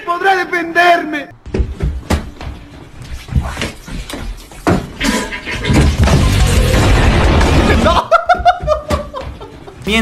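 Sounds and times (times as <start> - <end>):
person laughing: 7.7 - 9.8.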